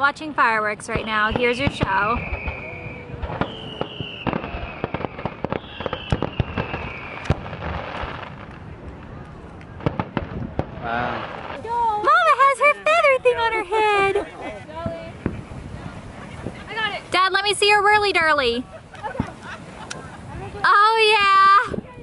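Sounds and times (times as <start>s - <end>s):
fireworks bangs and crackles: 0.0s - 22.0s
fireworks descending whistles: 0.8s - 13.1s.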